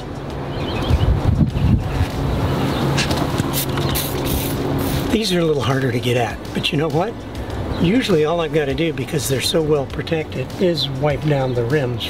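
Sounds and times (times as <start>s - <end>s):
steady low hum: 0.0s - 11.2s
wind buffeting microphone: 0.4s - 10.2s
spray bottle hisses: 3.4s - 5.1s.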